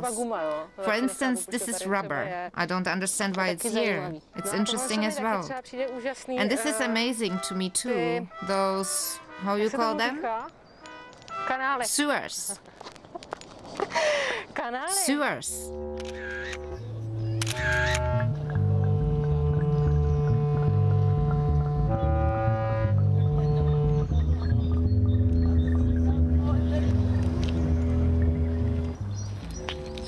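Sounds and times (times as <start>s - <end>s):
low steady bass: 15.5s - 30.0s
slow electronic music: 15.5s - 30.0s
camera shutter clicks: 16.0s - 16.6s, 17.3s - 18.1s.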